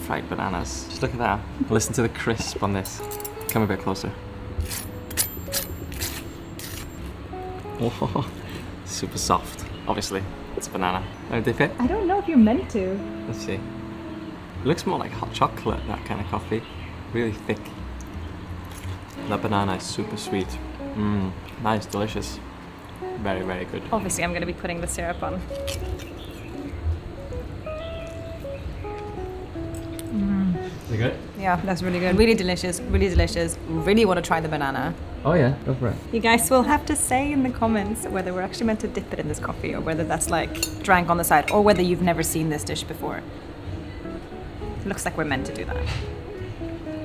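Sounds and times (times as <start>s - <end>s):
simple melody of held notes: 10.3s - 16.6s, 19.2s - 21.5s, 26.5s - 31.0s.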